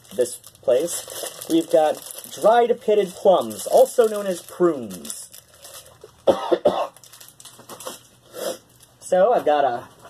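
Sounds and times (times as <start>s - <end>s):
person coughing: 6.2s - 7.0s.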